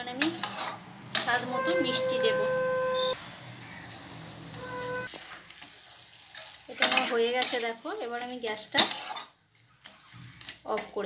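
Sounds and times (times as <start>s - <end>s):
metal spatula scraping wok: 0.1s - 5.4s, 8.7s - 10.5s
food sizzling: 0.4s - 10.6s
steady pitched tone: 1.4s - 3.2s.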